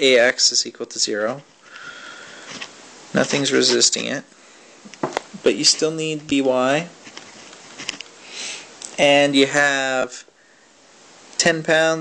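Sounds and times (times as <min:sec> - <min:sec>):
person speaking: 0:00.0 - 0:01.5, 0:02.3 - 0:07.1, 0:07.8 - 0:10.3, 0:11.3 - 0:12.0
microphone hiss: 0:00.0 - 0:12.0
person breathing in through nose: 0:01.6 - 0:02.7, 0:08.2 - 0:08.7.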